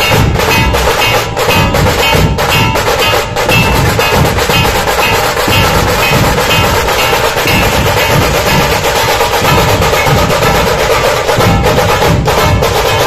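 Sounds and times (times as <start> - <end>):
dhol drums beating: 0.0 - 13.0
fast rattling drums: 0.0 - 13.0.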